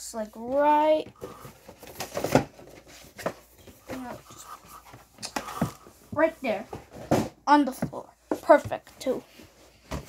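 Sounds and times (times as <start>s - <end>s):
murmurs and breaths: 1.1s - 2.0s, 3.6s - 6.4s.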